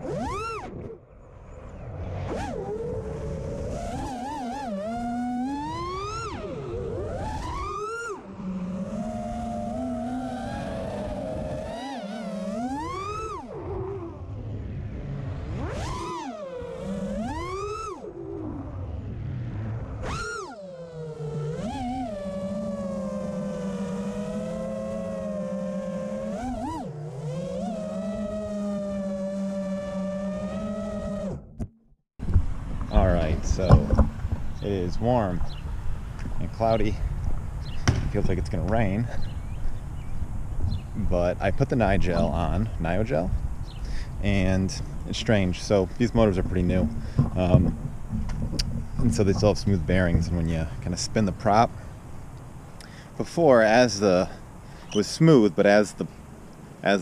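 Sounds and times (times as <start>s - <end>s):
drone motors whining: 0.0s - 57.0s.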